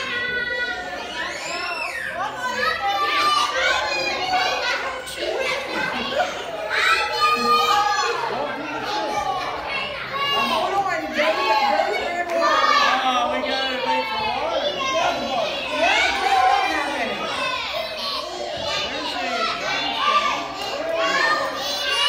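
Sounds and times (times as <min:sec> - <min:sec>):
children shouting and laughing: 0:00.0 - 0:22.0.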